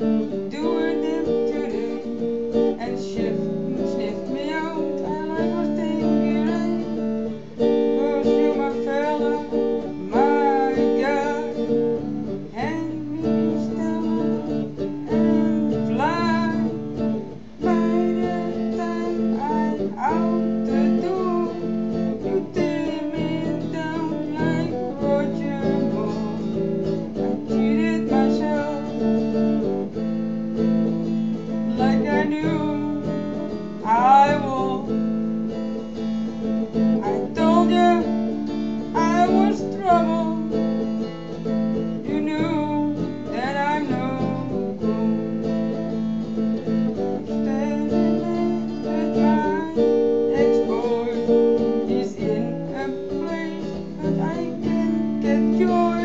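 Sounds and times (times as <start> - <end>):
person singing: 0.0 - 30.0, 31.4 - 35.3, 36.4 - 56.0
electric guitar strumming chords: 0.0 - 56.0.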